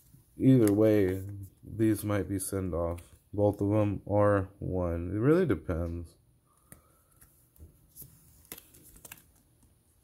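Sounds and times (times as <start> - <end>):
plastic card sleeves rustling: 0.0 - 2.0, 6.6 - 10.0.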